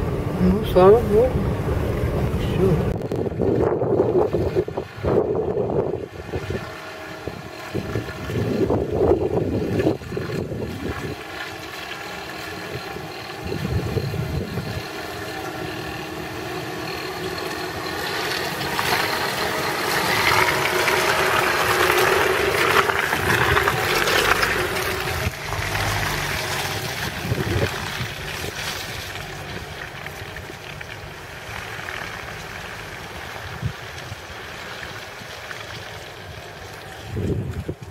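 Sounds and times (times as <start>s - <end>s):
wind gusts on microphone: 0.0s - 11.3s, 12.7s - 14.9s, 20.1s - 29.1s, 37.0s - 37.9s
van engine driving past: 0.0s - 37.4s
tyres on muddy dirt track: 0.0s - 37.9s.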